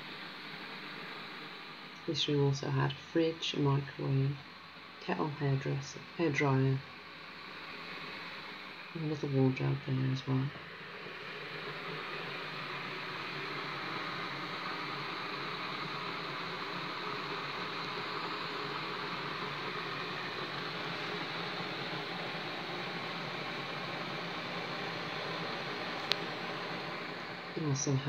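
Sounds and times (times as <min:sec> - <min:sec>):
electric kettle hissing: 0:00.0 - 0:28.0.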